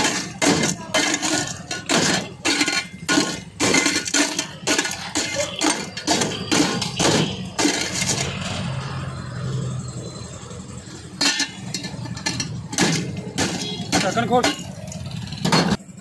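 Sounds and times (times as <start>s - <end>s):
metal rod crunching ice in pot: 0.0s - 8.4s.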